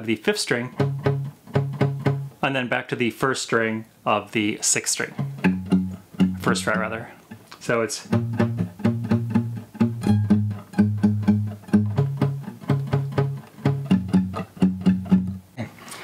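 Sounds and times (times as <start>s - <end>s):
classical guitar bass notes: 0.6s - 2.4s, 5.1s - 7.0s, 8.0s - 15.6s.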